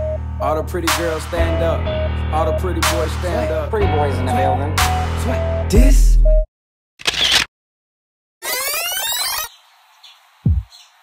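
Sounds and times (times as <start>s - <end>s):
electronic hip-hop beat: 0.0s - 6.5s, 10.5s - 10.7s.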